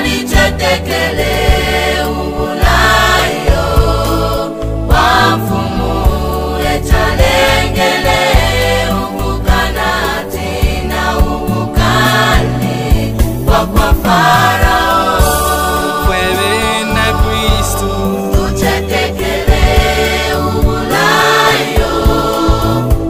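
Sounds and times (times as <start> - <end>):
bass and drum beat: 0.0 - 23.0
gospel choir singing: 0.0 - 23.0.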